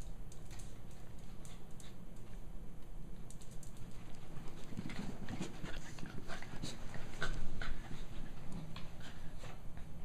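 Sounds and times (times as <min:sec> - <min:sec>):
dogs play noises: 0:03.8 - 0:10.0
dogs panting: 0:04.5 - 0:10.0.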